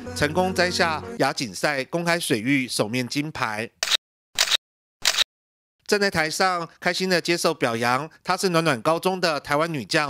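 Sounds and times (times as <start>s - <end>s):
camera shutter clicks: 3.8s - 5.3s.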